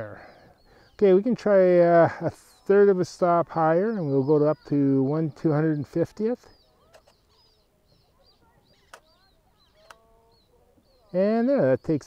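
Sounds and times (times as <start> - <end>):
soft birdsong: 0.0 - 12.0.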